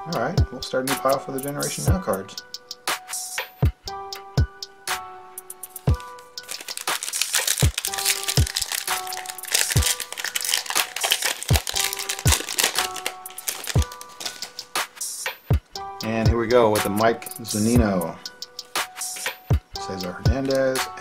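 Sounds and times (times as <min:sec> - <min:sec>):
background music: 0:00.0 - 0:21.0
foil wrapper crinkling: 0:06.0 - 0:14.6.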